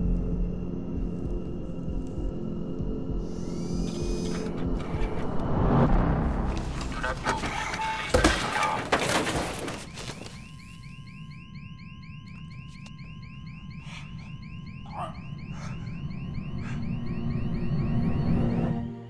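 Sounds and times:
electronic alarm chirping: 0:03.0 - 0:05.2, 0:06.9 - 0:19.0
steady electronic tone: 0:10.5 - 0:19.0.

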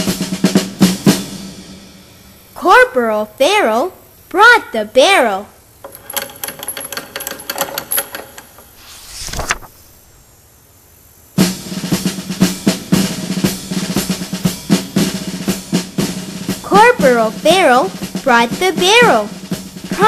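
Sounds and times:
snare drum rolls: 0:00.0 - 0:02.1, 0:11.4 - 0:20.0.

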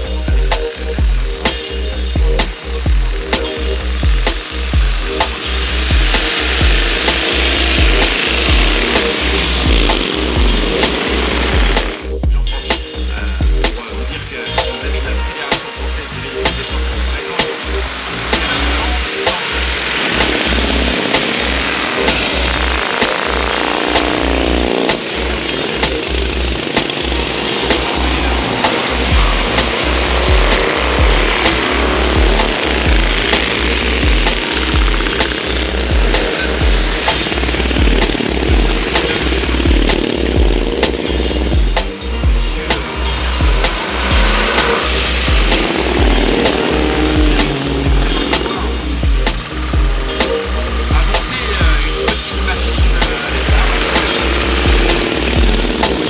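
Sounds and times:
music with steady beat: 0:00.0 - 0:56.0
racing engines passing: 0:13.0 - 0:56.0.

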